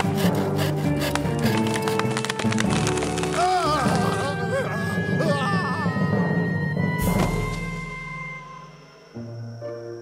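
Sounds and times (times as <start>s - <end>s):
crosscut saw rasping: 0.0s - 2.0s
background music: 0.0s - 10.0s.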